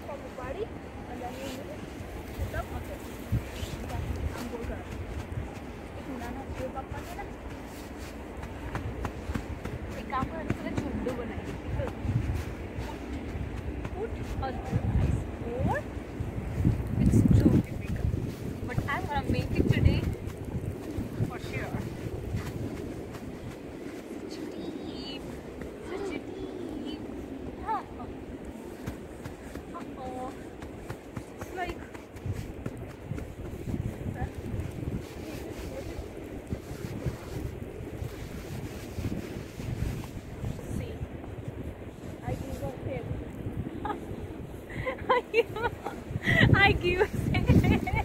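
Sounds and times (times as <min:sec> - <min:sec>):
wind buffeting microphone: 0:00.0 - 0:48.0.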